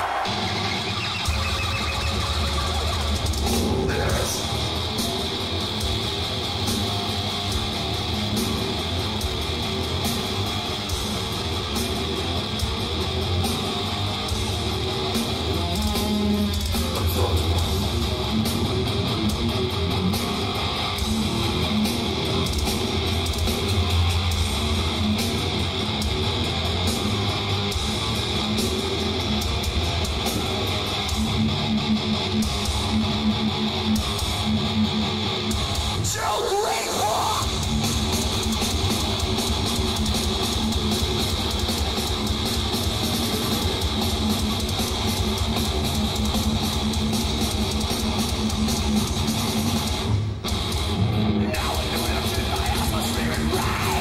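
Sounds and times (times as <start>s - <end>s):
guitar squeal gliding upward: 0.0s - 3.6s
distorted electric guitar riff: 0.0s - 54.0s.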